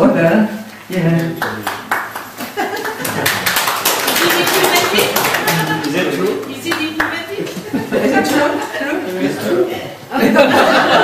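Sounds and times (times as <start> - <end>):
audience applauding: 1.2 - 7.9
voices: 4.1 - 11.0.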